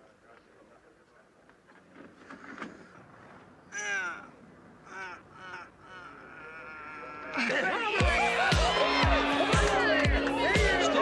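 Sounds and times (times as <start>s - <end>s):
people exclaiming: 3.7s - 11.0s
loud music: 8.0s - 11.0s.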